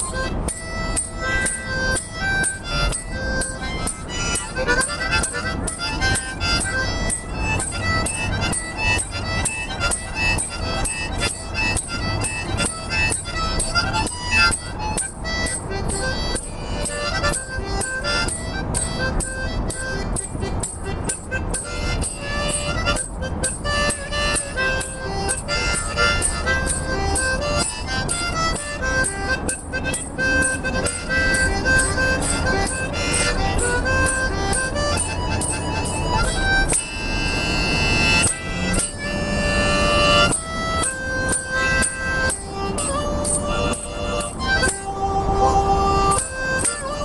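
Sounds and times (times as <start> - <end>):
harmonica melody: 0.0 - 47.0
quick ticking beat: 0.0 - 47.0.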